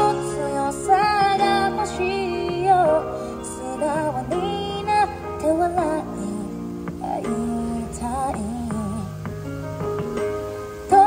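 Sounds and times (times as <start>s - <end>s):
woman singing: 0.0s - 9.5s
slow ballad backing track: 0.0s - 11.0s.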